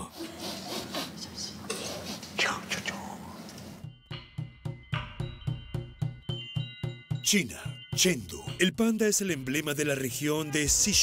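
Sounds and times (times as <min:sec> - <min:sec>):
soft breathy whispering: 0:00.0 - 0:03.5.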